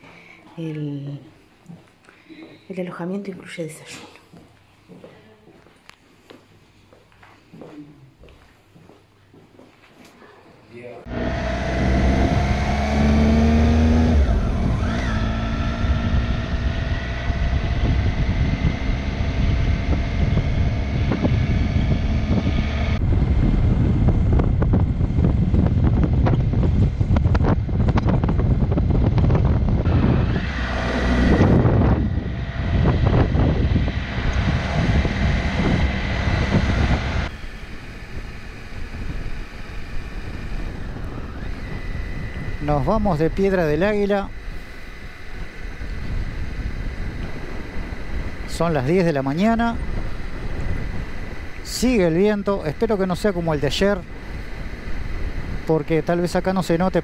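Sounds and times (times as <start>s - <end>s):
motorcycle engine revving: 11.0s - 57.0s
wind noise on microphone: 11.1s - 57.0s.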